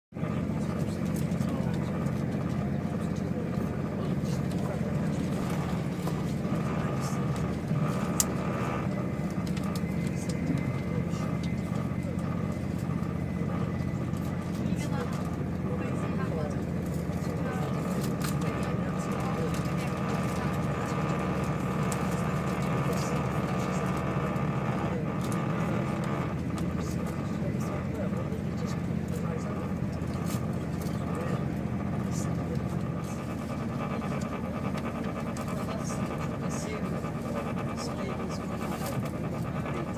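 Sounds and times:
faint steady whine: 0.2 - 39.9
vehicle rumble from inside cabin: 0.2 - 39.9.

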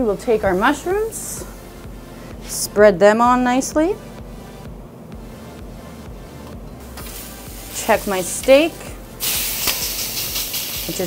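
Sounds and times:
faint background music: 0.0 - 11.0
steak sizzling on griddle: 6.8 - 11.0.

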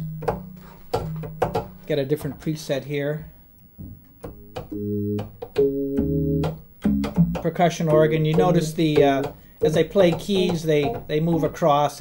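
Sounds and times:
synthesizer organ chords: 4.2 - 9.3
deep bass note: 4.4 - 8.8.

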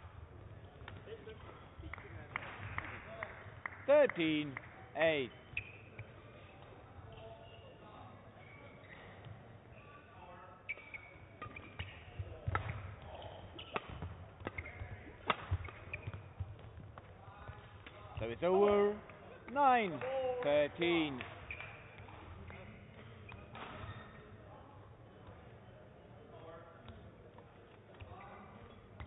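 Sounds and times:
racket striking shuttlecock: 13.6 - 16.2.

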